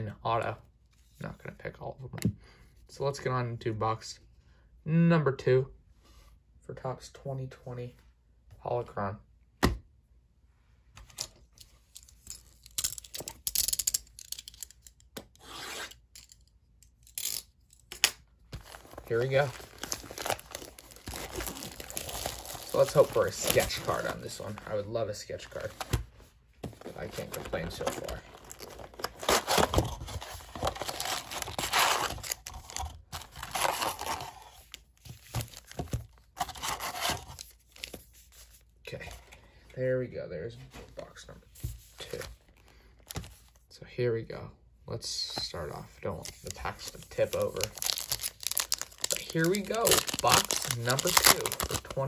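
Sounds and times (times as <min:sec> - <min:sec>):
wrapping tearing: 0:18.6 - 0:24.8, 0:46.3 - 0:52.0
foil packs crinkling: 0:18.6 - 0:25.9, 0:26.8 - 0:34.4, 0:46.2 - 0:52.0.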